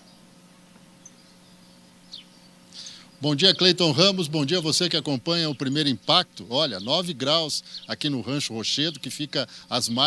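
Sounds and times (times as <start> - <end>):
faint bird chirps: 0.0 - 4.0, 4.8 - 8.2
low steady hum: 0.0 - 10.0.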